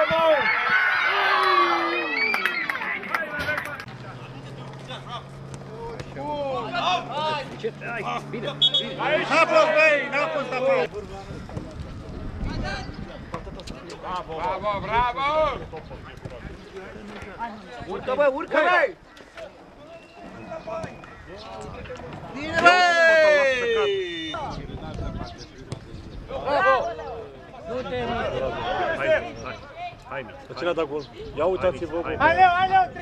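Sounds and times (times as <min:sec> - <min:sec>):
faint shouting voices: 0:00.0 - 0:25.5, 0:26.2 - 0:33.0.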